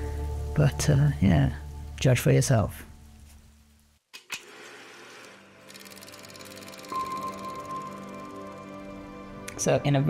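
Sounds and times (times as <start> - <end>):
fast high ticking: 5.6 - 9.0.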